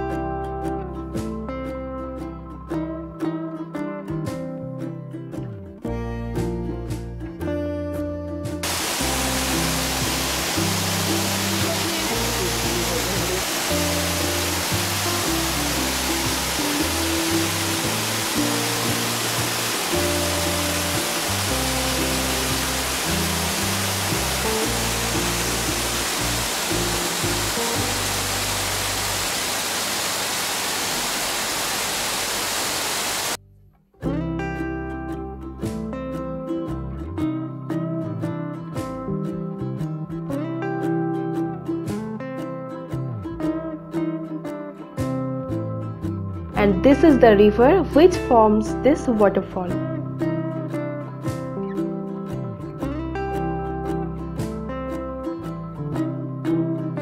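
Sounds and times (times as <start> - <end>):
acoustic guitar music: 0.0 - 29.4, 33.4 - 57.0
waterfall roar: 8.6 - 33.4.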